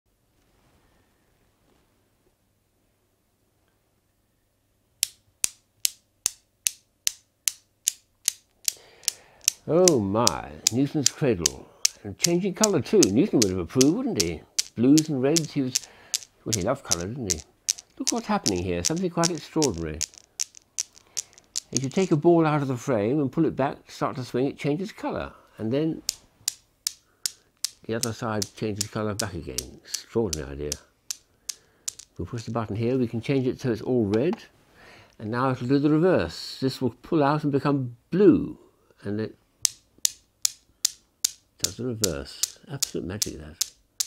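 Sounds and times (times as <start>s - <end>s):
newton's cradle balls clicking: 5.0s - 22.2s, 26.0s - 32.2s, 39.6s - 44.0s.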